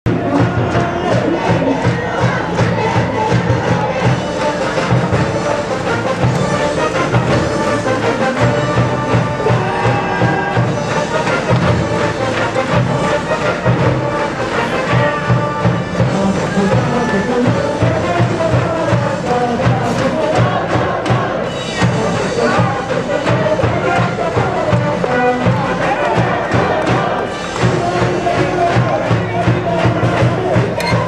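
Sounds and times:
band instruments playing: 0.1 - 31.0
crowd cheering: 0.1 - 31.0
steady drum beat: 0.1 - 31.0.

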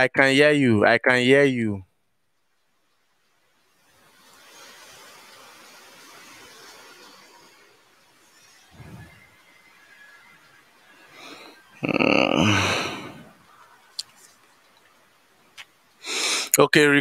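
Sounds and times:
hissy rustling noise: 2.8 - 11.8.

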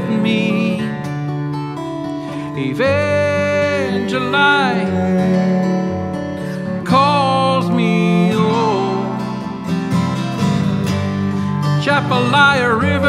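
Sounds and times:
acoustic guitar: 0.0 - 13.0
cello: 3.6 - 11.7.

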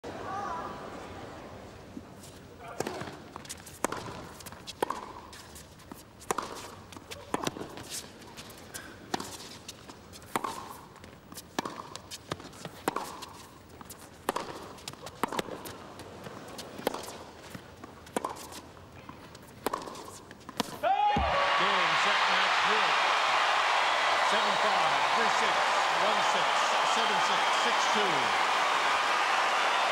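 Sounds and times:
tennis ball hit by rackets: 2.7 - 5.3, 6.3 - 7.9, 10.3 - 10.9, 11.6 - 13.4, 14.2 - 15.7, 16.8 - 21.4
tennis ball bouncing on court: 2.7 - 8.0, 10.2 - 21.4
crowd cheering and applause: 20.8 - 29.9.

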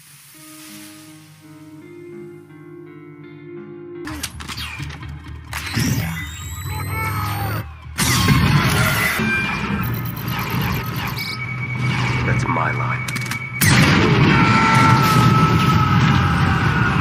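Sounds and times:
film music: 0.0 - 17.0.

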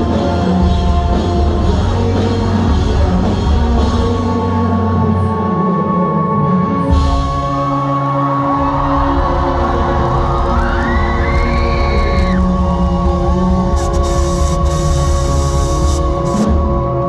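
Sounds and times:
live rock band playing: 0.0 - 17.0
crowd cheering: 7.5 - 14.4
person whooping: 8.4 - 12.5.

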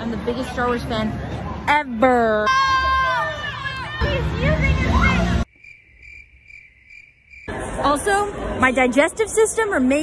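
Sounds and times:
cricket chirping: 5.5 - 7.5.

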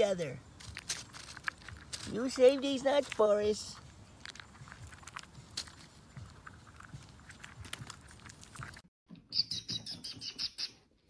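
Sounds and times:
chipmunk clicks and rustling: 0.1 - 8.8.

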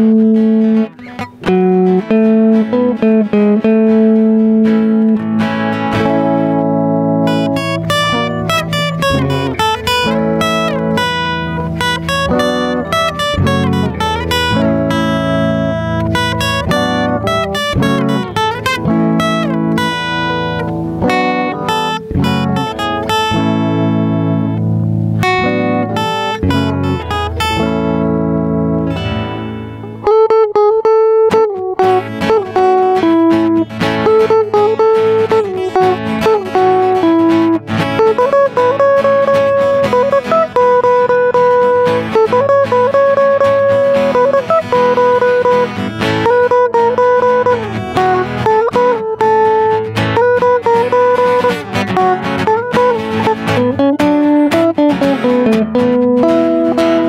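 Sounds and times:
acoustic guitar picking: 0.0 - 57.0
electric guitar lead line: 0.0 - 57.0.

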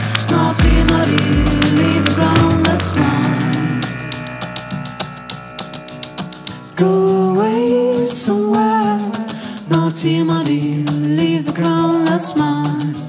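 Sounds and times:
live electro-pop music: 0.0 - 5.6
held melody line bending upward: 0.3 - 7.5.

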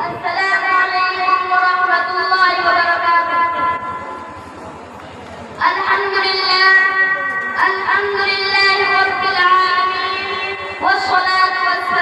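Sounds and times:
boy chanting through loudspeaker: 0.0 - 4.4, 5.6 - 12.0.

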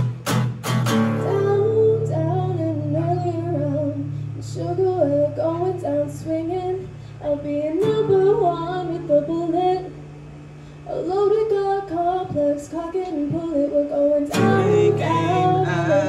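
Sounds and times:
strummed acoustic guitar: 0.0 - 13.5, 14.2 - 16.0
girl singing: 1.2 - 10.0, 10.9 - 16.0.

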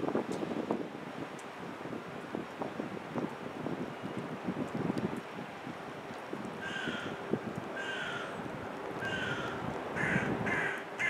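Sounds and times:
bird calling: 7.8 - 8.4.

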